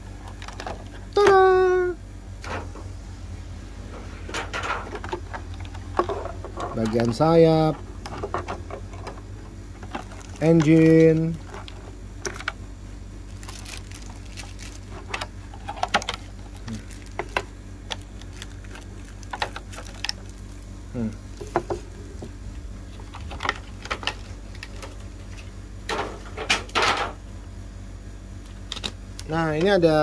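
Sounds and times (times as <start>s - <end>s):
plastic packaging crinkling: 9.8s - 12.5s, 13.2s - 20.7s, 22.9s - 25.5s.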